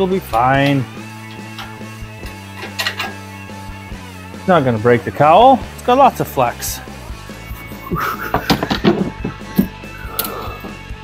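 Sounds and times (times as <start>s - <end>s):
background music: 0.0s - 11.0s
clunks and metal knocks: 1.3s - 3.3s, 8.4s - 9.8s.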